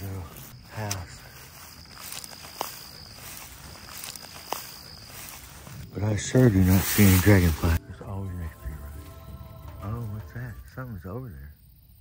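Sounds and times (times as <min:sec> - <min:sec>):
twigs snapping: 0:00.0 - 0:05.8
footsteps rustling through dry grass: 0:00.0 - 0:07.8.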